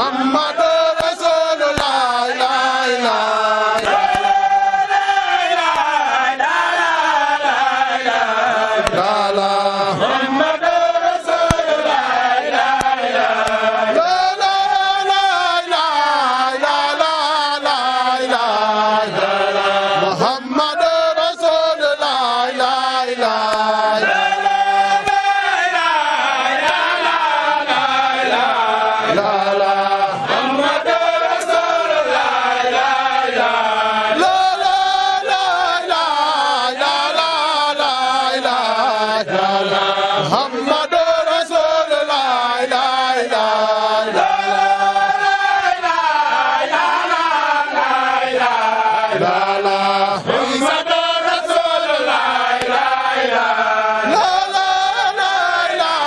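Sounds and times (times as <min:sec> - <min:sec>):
men chanting together: 0:00.0 - 0:56.0.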